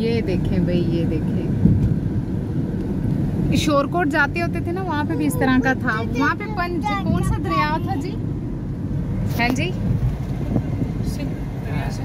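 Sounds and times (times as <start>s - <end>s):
car engine and tyre rumble: 0.0s - 12.0s.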